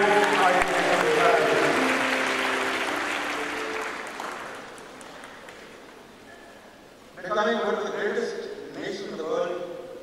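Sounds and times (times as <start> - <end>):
man talking: 0.0 - 1.8.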